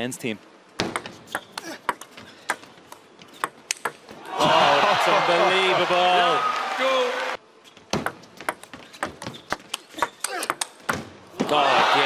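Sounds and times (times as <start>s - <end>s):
table tennis ball hitting bats and table: 0.8s - 4.2s, 7.9s - 11.1s.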